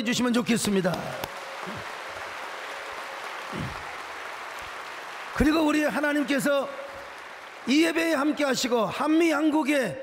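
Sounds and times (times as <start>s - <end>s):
crowd applauding: 0.4s - 9.3s.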